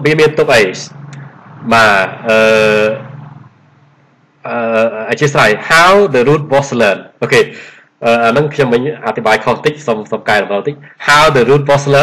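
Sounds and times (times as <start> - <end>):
man saying drawn-out uhh: 1.6 - 3.1, 4.5 - 6.0.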